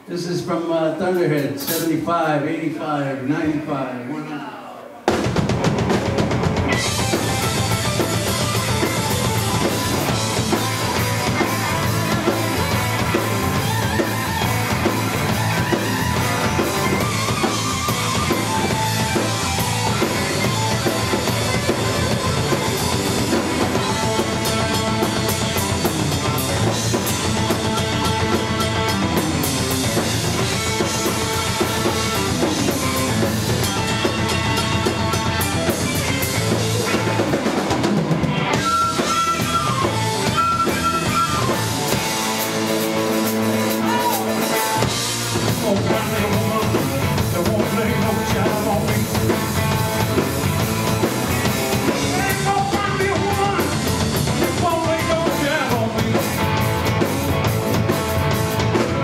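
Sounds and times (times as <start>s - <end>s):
live rock band playing: 0.0s - 2.8s, 4.8s - 59.0s.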